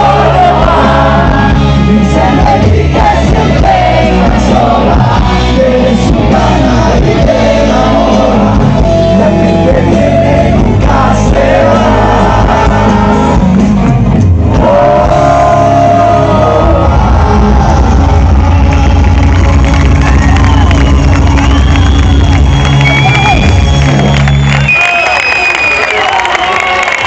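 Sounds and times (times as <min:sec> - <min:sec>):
male singer: 0:00.0 - 0:13.6, 0:14.5 - 0:18.6
live rock band playing: 0:00.0 - 0:24.7
crowd shouting and cheering: 0:00.0 - 0:27.0.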